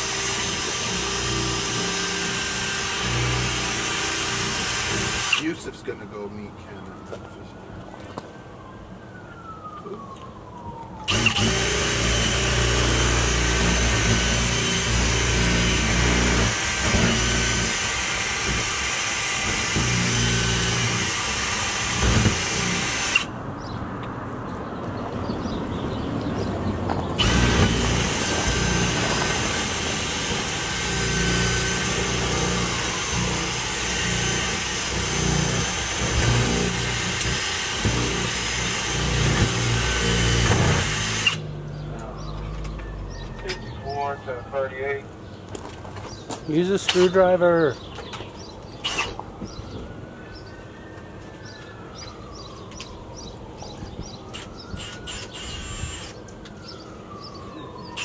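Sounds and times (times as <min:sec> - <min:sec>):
power drill drilling: 0:00.0 - 0:05.5, 0:11.1 - 0:23.3, 0:27.2 - 0:41.4, 0:48.8 - 0:49.2, 0:54.3 - 0:56.2.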